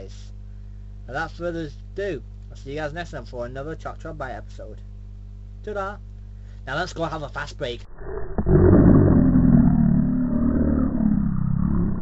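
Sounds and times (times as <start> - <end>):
muffled engine revving roar: 8.1 - 12.0.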